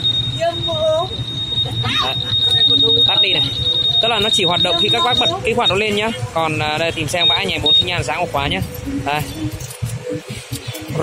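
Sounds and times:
motorcycle alarm high-pitched tone: 0.0 - 9.9.

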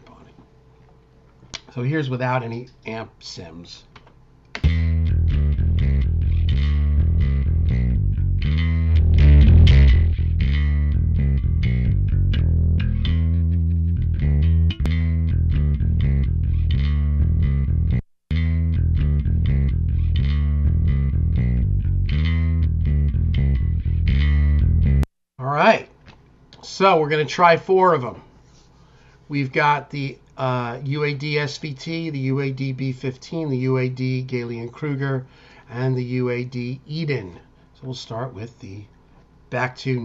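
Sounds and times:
distorted electric bass guitar: 4.6 - 25.1.

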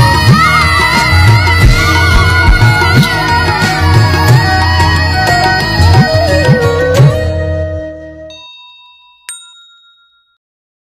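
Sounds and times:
bright chime ding: 8.3 - 10.4.

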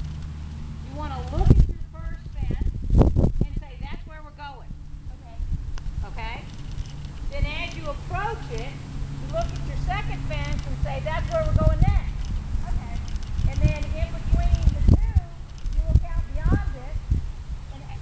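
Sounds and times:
horse hooves thudding on sand: 5.8 - 16.8
person talking: 7.3 - 17.0.

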